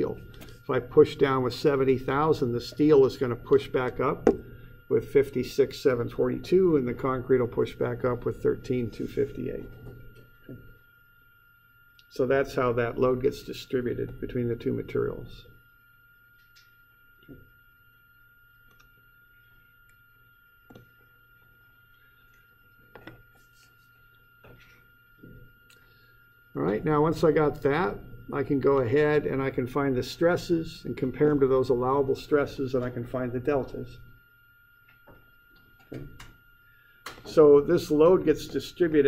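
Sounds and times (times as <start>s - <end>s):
low hum: 0.0s - 39.0s
thin whine: 0.0s - 39.0s.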